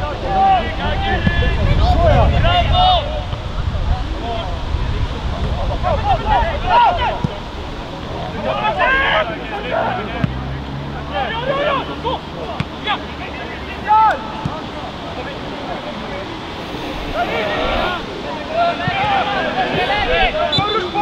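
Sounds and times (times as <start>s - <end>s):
wind noise: 0.0s - 8.3s, 16.3s - 18.4s
players shouting and calling: 0.0s - 21.0s.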